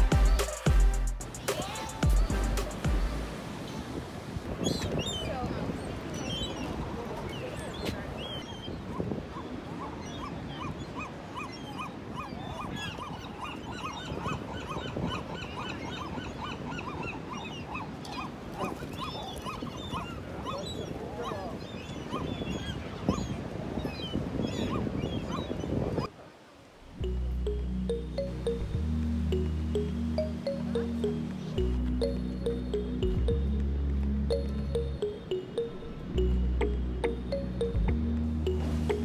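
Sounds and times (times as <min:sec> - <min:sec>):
seagulls calling: 0:04.7 - 0:25.8.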